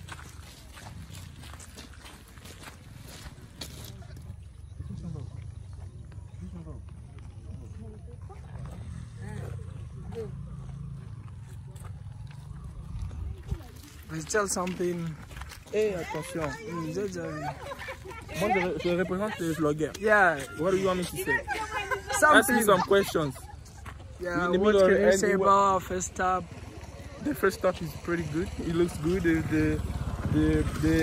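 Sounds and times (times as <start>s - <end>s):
distant people talking: 2.6s - 31.0s
low rumble: 6.8s - 14.1s.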